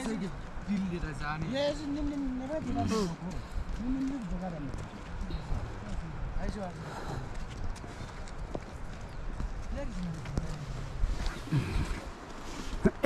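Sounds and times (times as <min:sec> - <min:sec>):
person speaking: 0:00.0 - 0:04.9
footsteps on stony trail: 0:00.0 - 0:13.0
shoes clicking on rocks: 0:00.0 - 0:13.0
wind buffeting microphone: 0:00.0 - 0:13.0.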